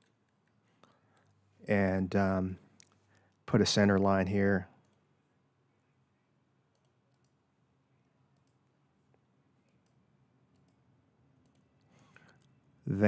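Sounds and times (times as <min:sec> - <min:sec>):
computer mouse clicks: 0:06.7 - 0:07.4, 0:08.4 - 0:10.8, 0:11.4 - 0:12.7.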